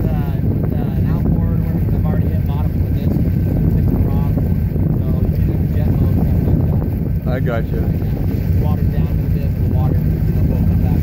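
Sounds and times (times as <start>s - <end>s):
motorboat engine droning: 0.0s - 11.0s
wind buffeting microphone: 0.0s - 11.0s.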